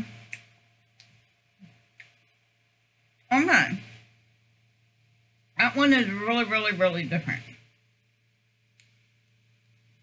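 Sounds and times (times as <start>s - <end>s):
faint low hum: 0.0s - 10.0s
faint click: 8.7s - 9.0s.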